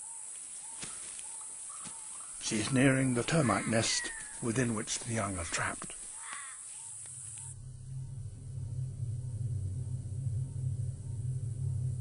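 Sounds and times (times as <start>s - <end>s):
bird cawing: 0.0s - 8.6s
steady low hum: 6.8s - 12.0s.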